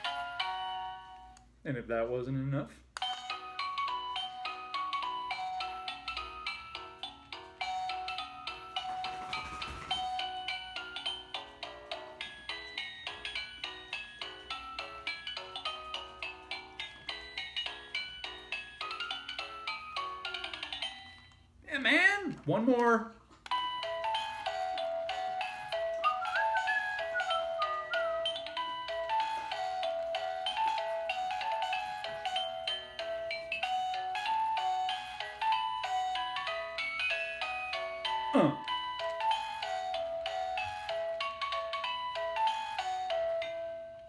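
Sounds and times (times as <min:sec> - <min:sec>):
electronic toy piano tune: 0:03.0 - 0:08.9, 0:10.0 - 0:21.4, 0:23.5 - 0:44.0.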